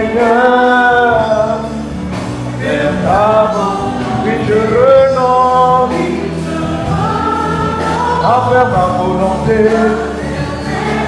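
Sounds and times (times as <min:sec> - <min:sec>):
voices singing gospel music: 0:00.0 - 0:11.0.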